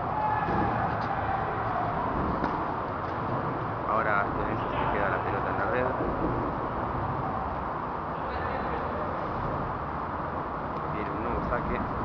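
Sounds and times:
indoor hall background rush: 0:00.0 - 0:12.0.

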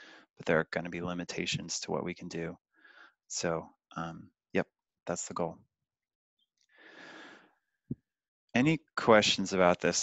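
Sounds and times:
person speaking: 0:00.5 - 0:02.5.

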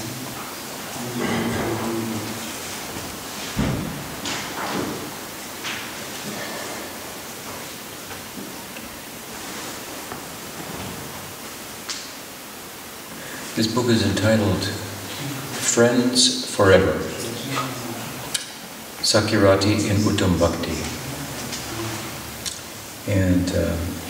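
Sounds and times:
microphone hiss: 0:00.0 - 0:24.0
soft thump: 0:03.6 - 0:04.1.

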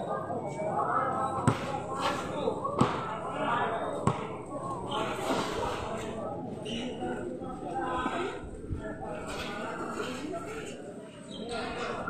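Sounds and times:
basketball bouncing on concrete: 0:01.4 - 0:01.8, 0:02.8 - 0:03.1, 0:04.0 - 0:04.4.

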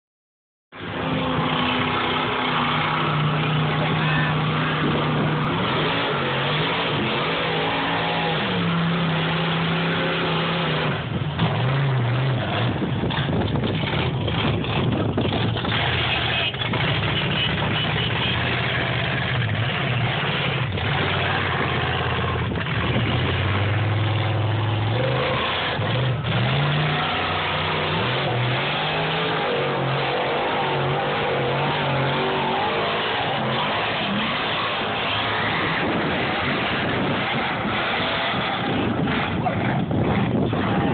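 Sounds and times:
truck engine revving: 0:00.7 - 0:40.9.

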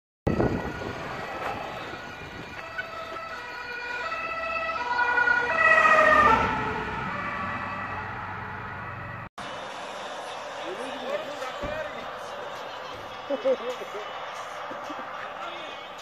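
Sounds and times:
two-tone emergency siren: 0:00.3 - 0:09.3.

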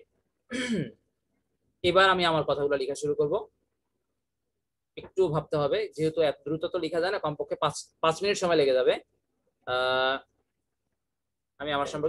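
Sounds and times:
man clearing his throat: 0:00.5 - 0:01.0
man speaking: 0:09.7 - 0:10.3, 0:11.6 - 0:12.0.

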